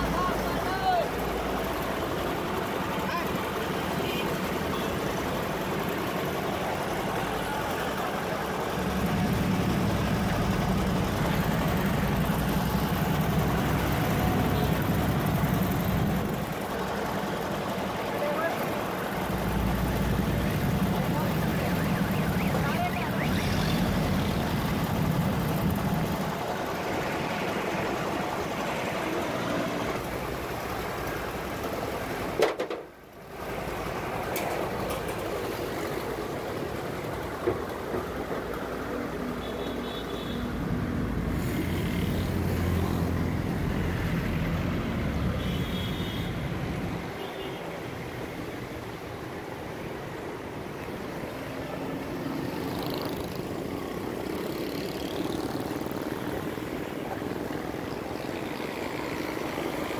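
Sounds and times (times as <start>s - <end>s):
street traffic: 0.0s - 59.9s.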